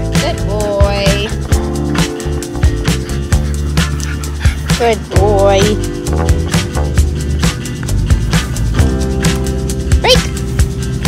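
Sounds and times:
upbeat background music: 0:00.0 - 0:11.0
dog yipping: 0:03.4 - 0:05.1.

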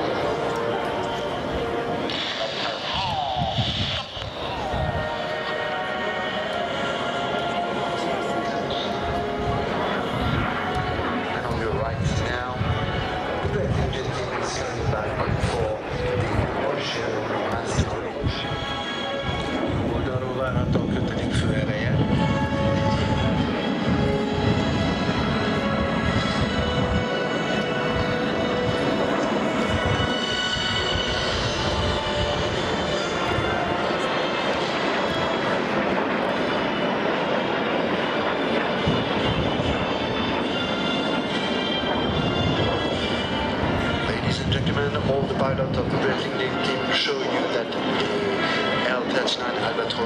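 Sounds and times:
jet engines rumbling overhead: 0:00.0 - 0:50.0
music playing: 0:00.0 - 0:50.0.

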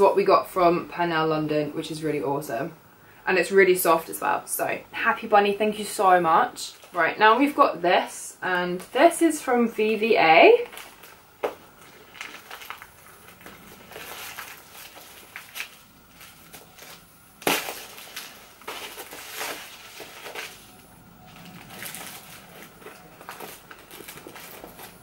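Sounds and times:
wrapping paper rustling: 0:10.4 - 0:25.0.

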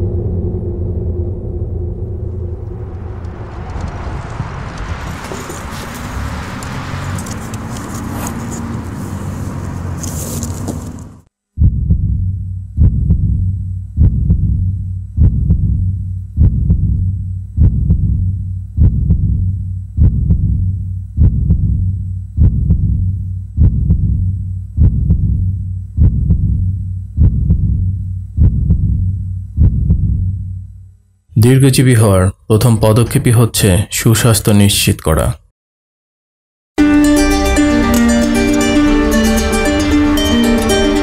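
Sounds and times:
noisy rush: 0:00.0 - 0:11.2
low hum: 0:00.0 - 0:31.3
heartbeat thumps: 0:11.6 - 0:30.8.

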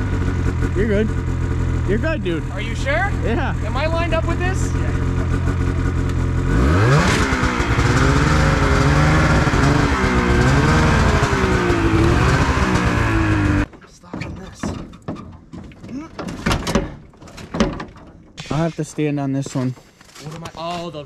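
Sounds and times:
snowmobile engine revving: 0:00.0 - 0:13.7
knocks and clunks: 0:12.2 - 0:21.0.

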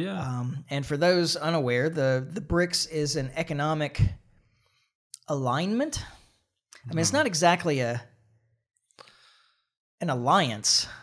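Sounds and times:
person breathing: 0:04.4 - 0:05.0, 0:09.0 - 0:09.8.

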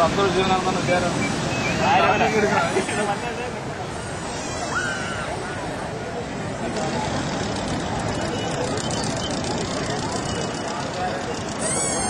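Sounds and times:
dense rushing background noise: 0:00.0 - 0:12.0
people talking: 0:00.0 - 0:12.0.

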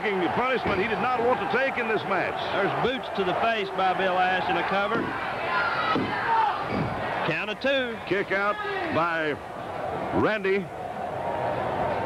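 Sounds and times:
wrestling crowd shouting: 0:00.0 - 0:12.0.

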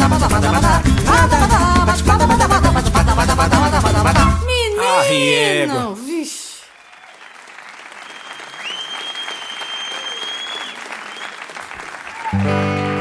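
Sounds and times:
audience applauding: 0:04.8 - 0:13.0
high whistle from crowd: 0:08.0 - 0:11.5.

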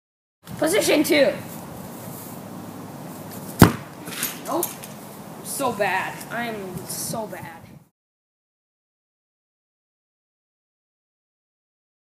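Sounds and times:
soccer ball kicked thud: 0:03.6 - 0:04.0.

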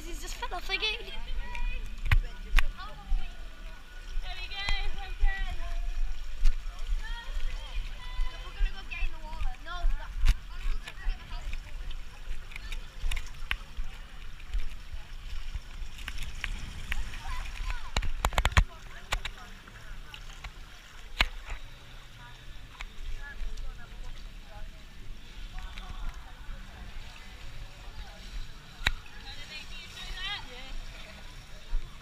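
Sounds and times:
water sounds: 0:00.0 - 0:32.0.

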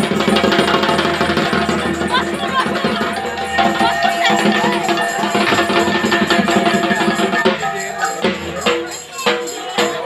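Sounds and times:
fast dense drumming: 0:00.0 - 0:10.0
steady held tones: 0:01.0 - 0:09.0.

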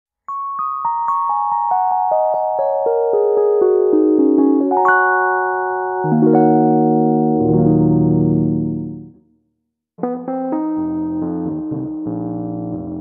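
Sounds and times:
electric piano notes ringing: 0:00.8 - 0:09.2.

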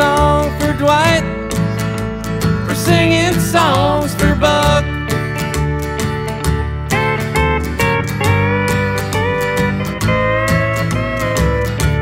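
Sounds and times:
bass: 0:00.0 - 0:12.0
lead guitar melody: 0:00.0 - 0:12.0
rhythm guitar: 0:00.0 - 0:12.0.

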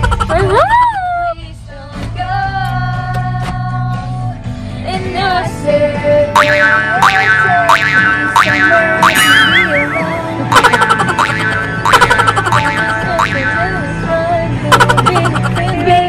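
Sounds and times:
playful tune over low beat: 0:00.0 - 0:00.7, 0:06.3 - 0:16.0.

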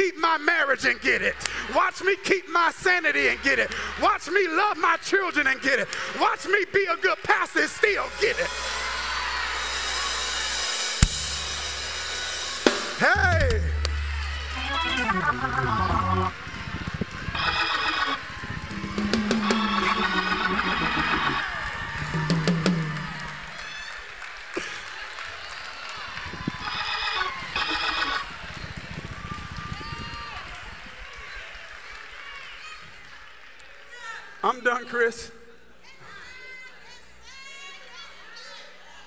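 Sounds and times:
church band music: 0:00.0 - 0:04.6, 0:07.6 - 0:23.6
drums: 0:08.0 - 0:23.7
keyboard notes: 0:12.6 - 0:16.6, 0:17.3 - 0:23.5
congregation shouting: 0:12.7 - 0:16.6, 0:17.4 - 0:23.6.

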